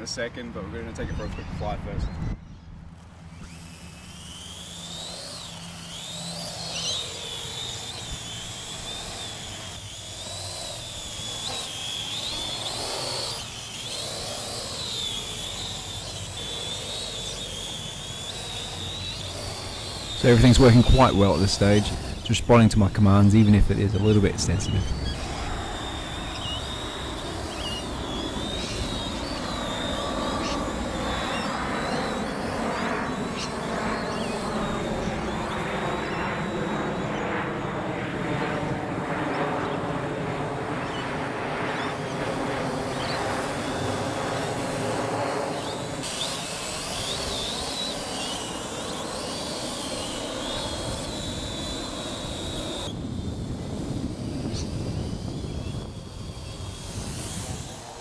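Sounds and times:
drone rotors whining: 0.0 - 58.0.

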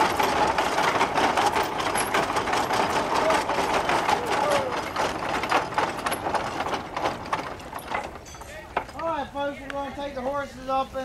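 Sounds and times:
treadmill gearing clattering: 0.0 - 9.6.

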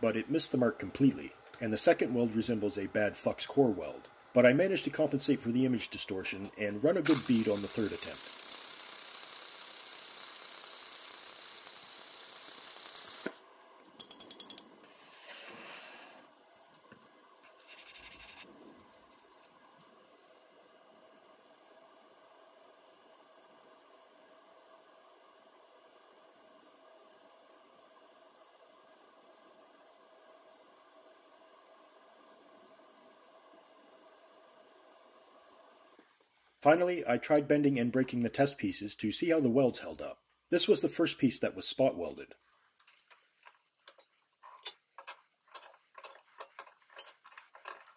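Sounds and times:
laser welder hissing: 0.3 - 13.4.

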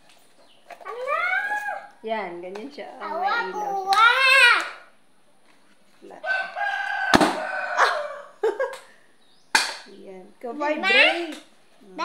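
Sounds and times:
rooster crowing: 6.2 - 8.7
sharp snap: 7.1 - 7.4, 9.5 - 9.9.

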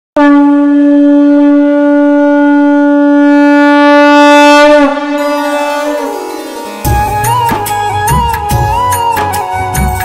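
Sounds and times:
conch shell horn blown: 0.2 - 8.2.

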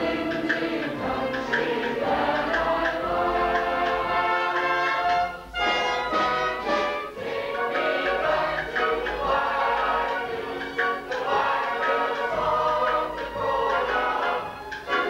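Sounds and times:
chorus singing: 0.0 - 15.0
pit orchestra playing: 0.0 - 15.0.

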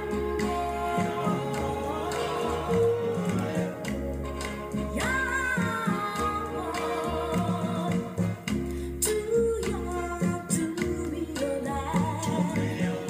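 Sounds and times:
song on vinyl record: 0.0 - 13.0.

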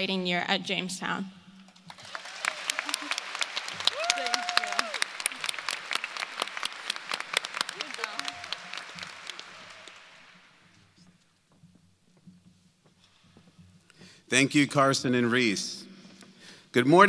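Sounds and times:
audience applauding: 1.8 - 10.9.

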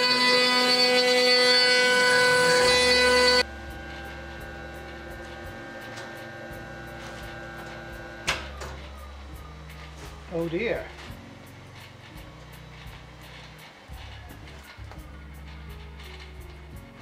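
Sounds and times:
router spindle whine carving wood: 0.0 - 11.2
quiet machine hum: 1.6 - 17.0.

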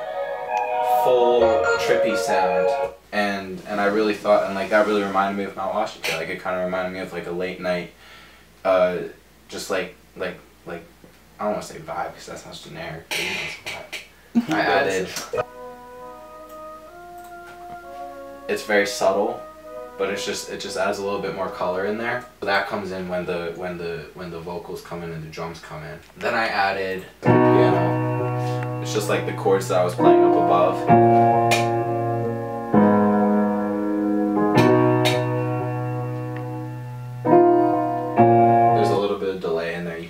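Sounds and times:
sustained synth chords: 0.0 - 3.0, 15.4 - 22.0, 27.3 - 39.0.

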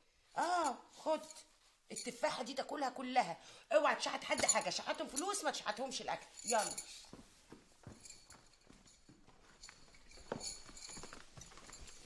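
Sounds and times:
footsteps on hard floor: 7.0 - 12.0.

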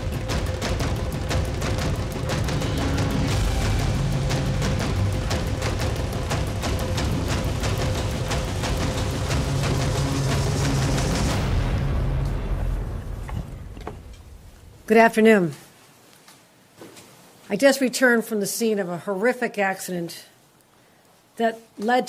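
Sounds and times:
pounding percussion hits: 0.0 - 14.4
dramatic background music: 0.0 - 14.5.

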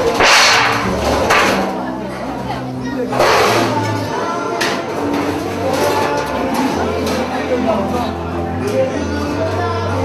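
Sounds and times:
loud dance music: 0.0 - 1.7.

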